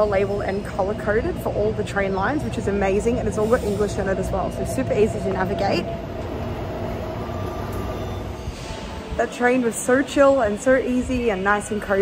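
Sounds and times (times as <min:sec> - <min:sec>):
metro train rumble and hum: 0:00.0 - 0:12.0.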